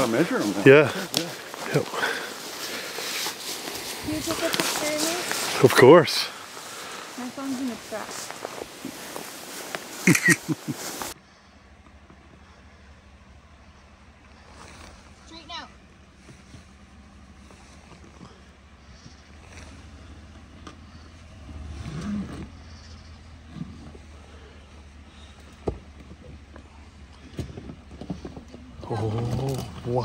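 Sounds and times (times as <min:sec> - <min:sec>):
pickup truck engine hum: 0:00.0 - 0:30.0.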